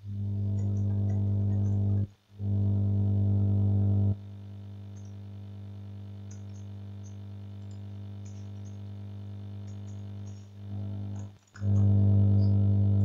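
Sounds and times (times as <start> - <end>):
low electrical hum: 0.0 - 13.0
computer keyboard clicks: 6.3 - 8.8, 9.6 - 10.5.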